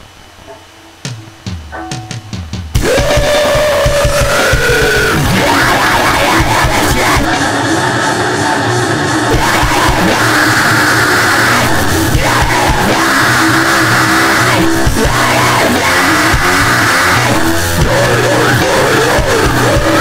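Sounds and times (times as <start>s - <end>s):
distorted guitars and drums: 0.0s - 20.0s
harsh yelled vocals: 2.8s - 20.0s.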